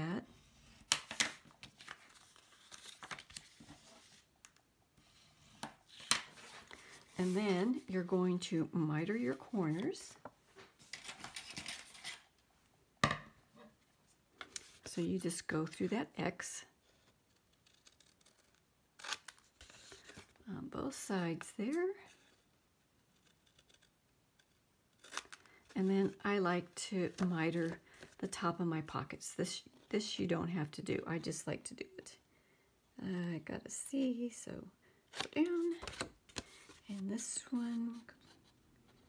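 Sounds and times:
cardstock rustling and sliding: 0:00.6 - 0:04.3, 0:05.0 - 0:07.9.

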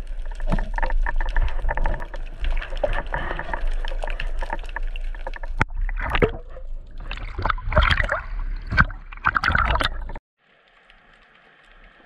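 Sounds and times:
underwater rushing and clicks: 0:00.0 - 0:12.0.

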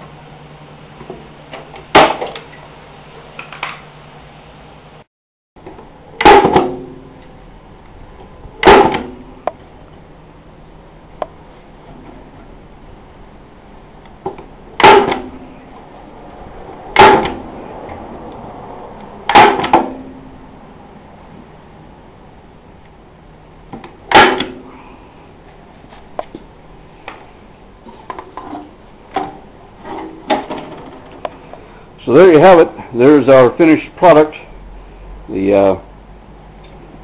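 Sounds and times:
loud bang on wooden box: 0:06.2 - 0:07.0, 0:08.6 - 0:09.3, 0:14.8 - 0:15.4, 0:17.0 - 0:17.5, 0:19.3 - 0:20.1, 0:24.1 - 0:24.7.

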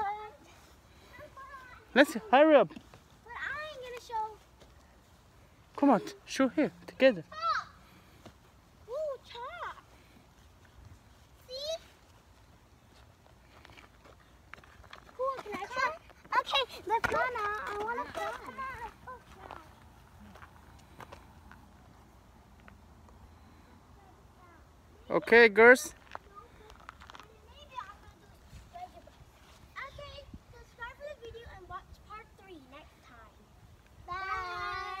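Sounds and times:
footsteps on wood chips: 0:09.4 - 0:21.9.

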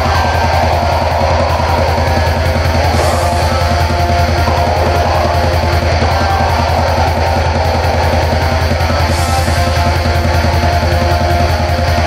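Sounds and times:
distorted electric guitars: 0:00.0 - 0:12.0
rapid drumming: 0:00.0 - 0:12.0.

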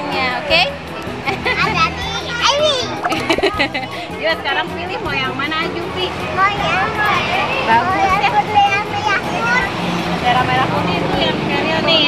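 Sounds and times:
background music: 0:00.0 - 0:12.0
children chattering in a crowd: 0:00.0 - 0:12.0.

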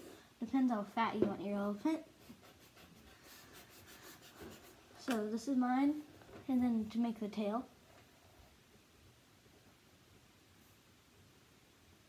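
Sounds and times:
pencil scratching on paper: 0:02.2 - 0:04.8.

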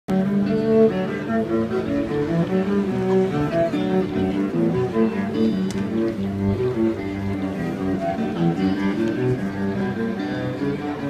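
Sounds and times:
bowed cello melody: 0:00.1 - 0:11.0.

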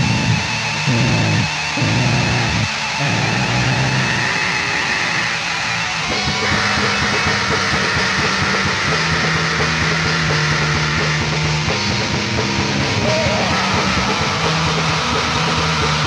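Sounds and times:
black metal band playing: 0:00.0 - 0:16.0.

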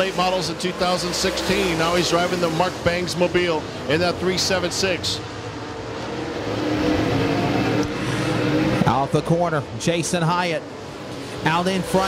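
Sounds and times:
race car engines drone: 0:00.0 - 0:12.0.

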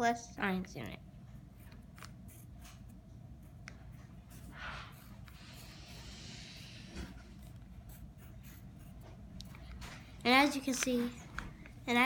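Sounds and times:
pencil scratching on paper: 0:01.4 - 0:11.1.

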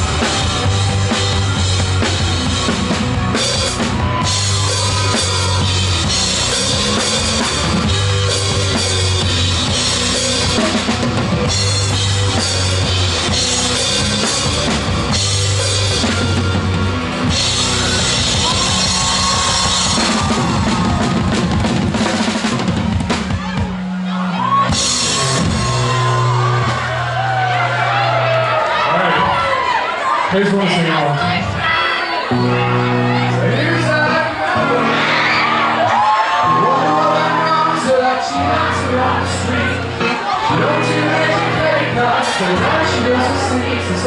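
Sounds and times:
live rock band playing: 0:00.0 - 0:44.0
sliding guitar notes: 0:32.3 - 0:44.0.

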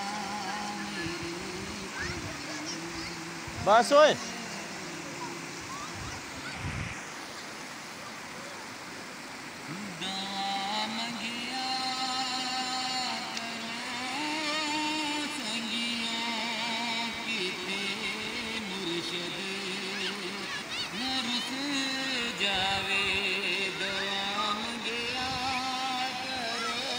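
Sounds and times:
man singing into microphone: 0:00.0 - 0:06.1, 0:09.7 - 0:26.9
river water rushing over rocks: 0:00.0 - 0:26.9.

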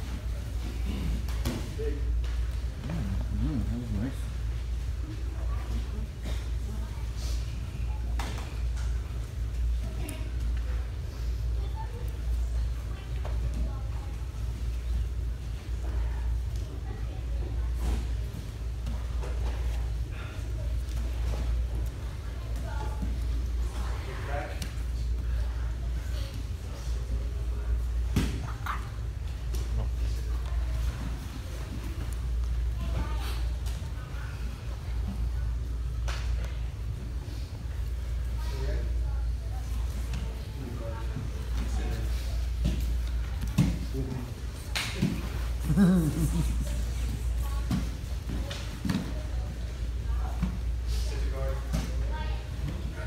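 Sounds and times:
steady low hum: 0:00.0 - 0:53.0
people talking: 0:43.4 - 0:53.0.

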